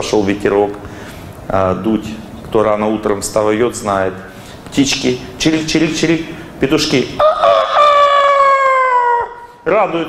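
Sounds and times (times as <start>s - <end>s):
man imitating rooster crow: 7.2s - 9.5s.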